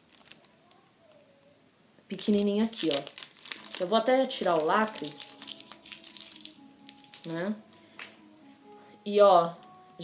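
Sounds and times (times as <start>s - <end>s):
plastic seal crinkling and tearing: 0.0s - 0.8s, 2.1s - 7.5s
faint background music: 0.1s - 10.0s.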